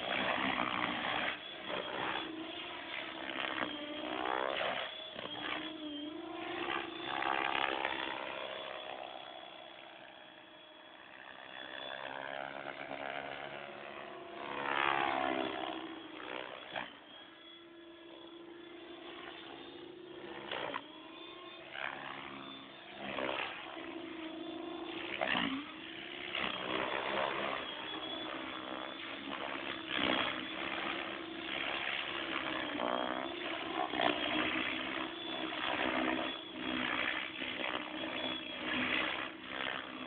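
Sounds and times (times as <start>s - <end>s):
rc helicopter motor whine: 0.0s - 40.0s.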